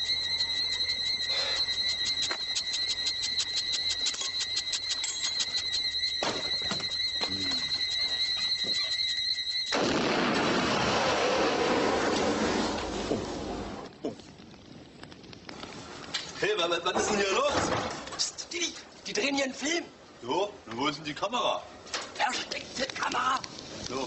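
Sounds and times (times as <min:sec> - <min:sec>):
crackling high whine: 0:00.0 - 0:24.0
loud noisy blast: 0:09.7 - 0:13.9.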